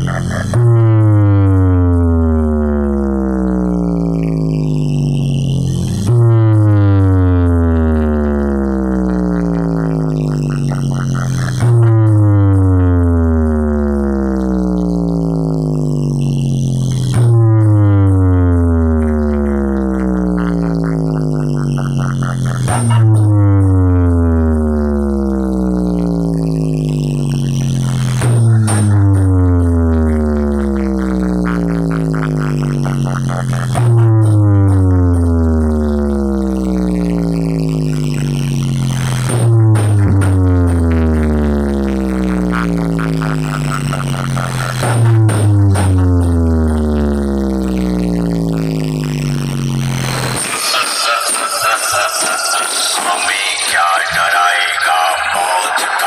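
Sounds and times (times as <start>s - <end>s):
buzzy bass tone sliding down: 0.0s - 56.0s.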